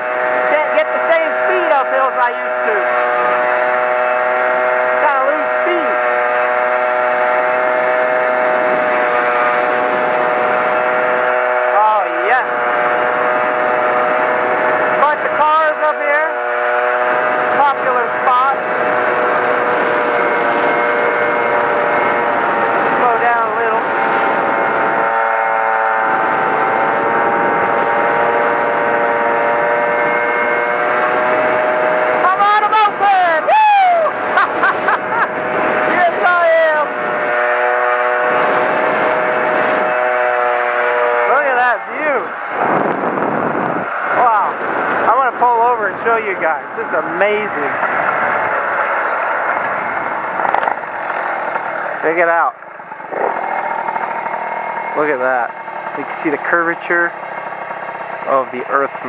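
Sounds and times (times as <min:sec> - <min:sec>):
moped engine running: 0:00.0 - 0:59.0.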